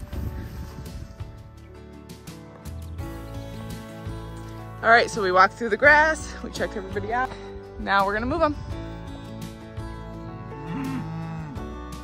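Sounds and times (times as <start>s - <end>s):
guitar music: 1.2s - 12.0s
cow mooing: 10.5s - 11.9s.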